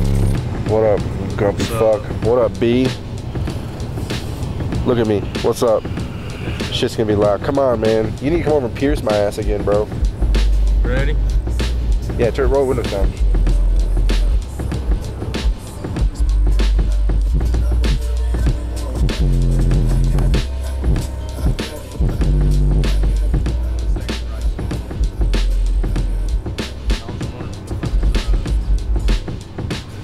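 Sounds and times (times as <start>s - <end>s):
bass-heavy music from subwoofers: 0.0s - 30.0s.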